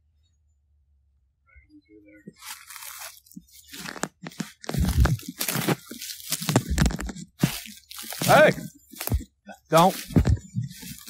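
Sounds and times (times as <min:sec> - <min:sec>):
footsteps crunching dry leaves: 0:02.3 - 0:11.0
heavy thuds: 0:04.5 - 0:11.0.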